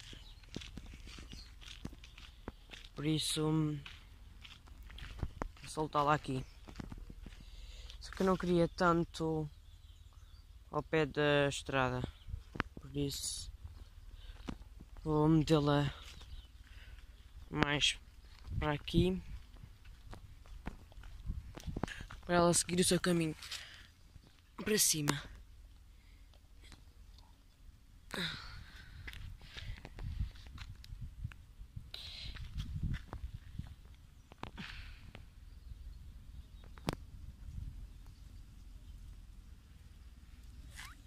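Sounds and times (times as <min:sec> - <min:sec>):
footsteps crunching on straw: 0:00.0 - 0:08.6
rustle: 0:19.2 - 0:27.8, 0:36.5 - 0:41.0.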